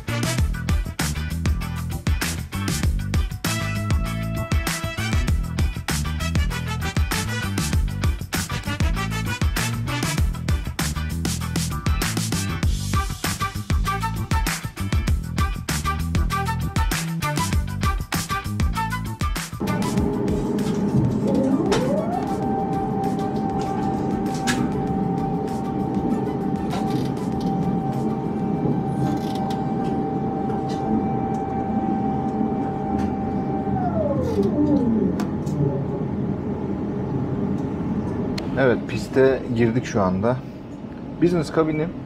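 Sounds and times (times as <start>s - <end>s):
rising and falling tone: 19.6s - 38.4s
airplane cabin engine hum: 19.6s - 42.0s
faint music: 19.6s - 42.0s.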